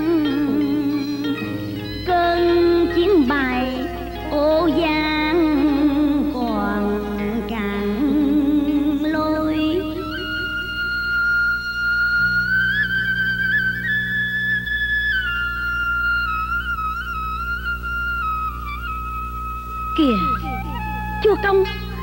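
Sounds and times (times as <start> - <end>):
low steady background: 0.0 - 22.0
bamboo flute melody: 8.7 - 22.0.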